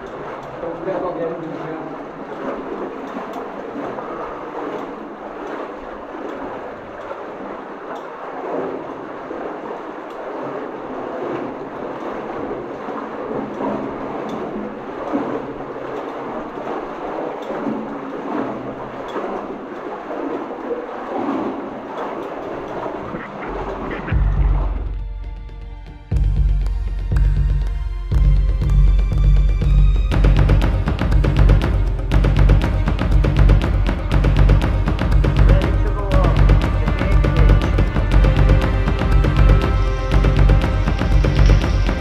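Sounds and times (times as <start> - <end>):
water sloshing and splashing: 0.0 - 42.0.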